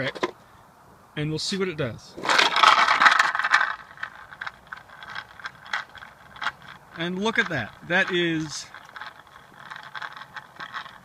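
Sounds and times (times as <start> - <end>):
skateboard wheels rolling on concrete: 2.1 - 11.0.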